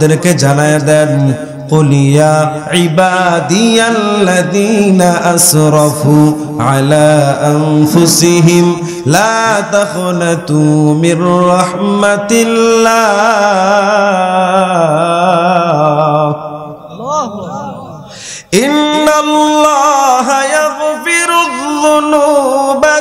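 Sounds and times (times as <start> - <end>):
man chanting into a microphone: 0.0 - 23.0.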